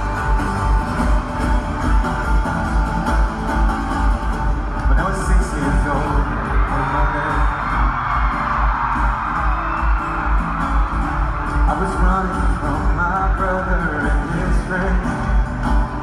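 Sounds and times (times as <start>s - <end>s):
live pop music in arena: 0.0s - 16.0s.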